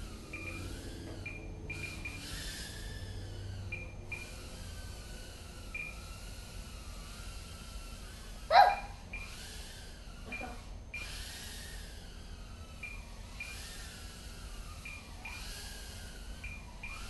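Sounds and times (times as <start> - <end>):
drone motors whining: 0.0 - 17.0.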